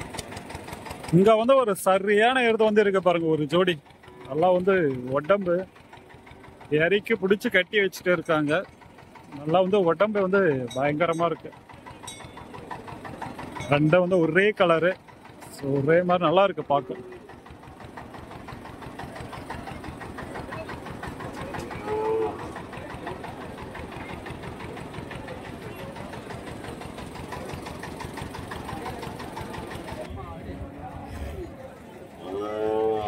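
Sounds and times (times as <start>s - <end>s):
diesel truck engine idling: 0.0s - 33.0s.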